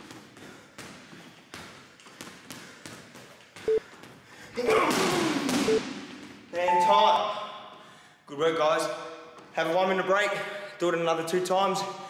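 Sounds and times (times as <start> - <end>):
short beeps: 6.6 - 7.3.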